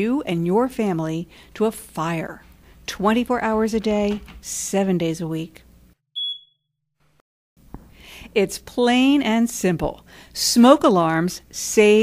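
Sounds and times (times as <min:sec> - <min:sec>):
smoke alarm beep: 0:06.2 - 0:06.6.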